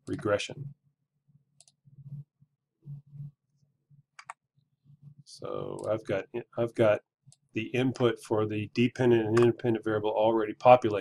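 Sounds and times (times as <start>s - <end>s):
soft low hum: 1.6s - 11.0s.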